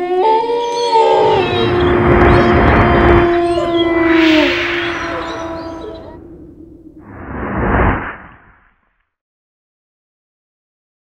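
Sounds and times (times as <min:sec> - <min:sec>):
wolves howling: 0:00.0 - 0:06.2
deep rumble: 0:01.2 - 0:08.7
rushing whooshes: 0:01.2 - 0:08.7.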